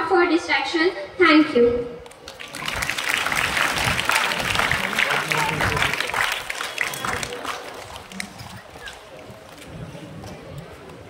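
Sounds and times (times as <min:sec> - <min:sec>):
audience background noise: 0:00.0 - 0:11.0
scattered applause: 0:02.0 - 0:10.0
faint voices: 0:02.3 - 0:11.0.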